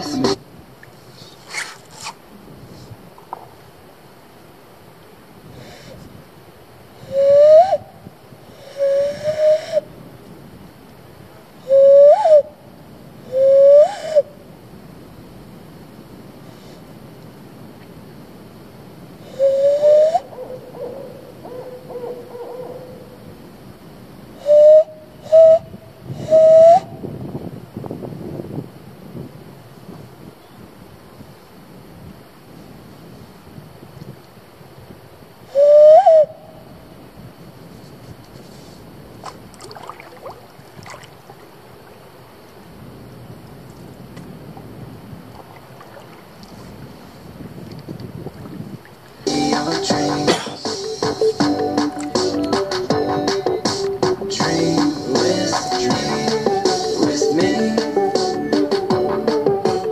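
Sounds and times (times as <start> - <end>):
cupped-hand whistle hoots: 7.1 - 8.0, 8.7 - 9.9, 11.6 - 12.6, 13.3 - 14.4, 19.3 - 20.4, 24.4 - 27.0, 35.5 - 36.5, 49.3 - 54.2, 55.1 - 59.9.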